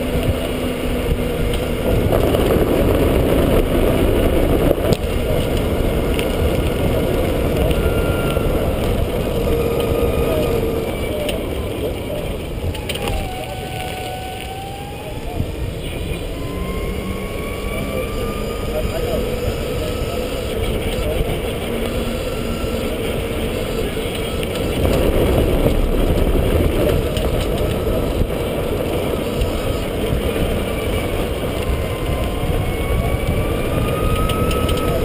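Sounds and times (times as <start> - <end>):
faint motor whine: 0.0 - 35.0
golf cart road and wind rumble: 0.0 - 35.0.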